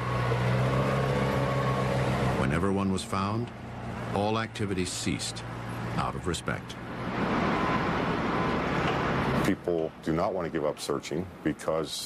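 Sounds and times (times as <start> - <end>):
heavy machine engine humming: 0.0 - 9.9.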